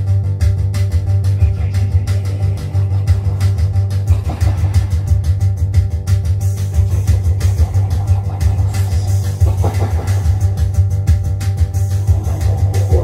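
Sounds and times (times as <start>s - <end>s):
loud low drone: 0.0s - 13.0s
steady higher tones: 0.9s - 13.0s.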